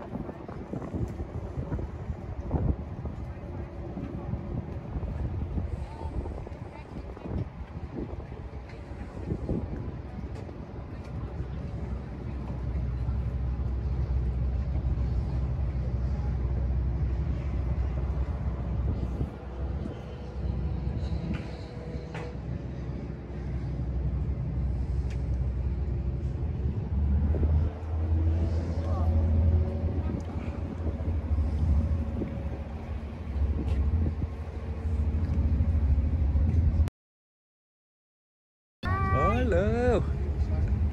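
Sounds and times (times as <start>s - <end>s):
ferry engine rumble: 0.0s - 36.9s, 38.8s - 40.9s.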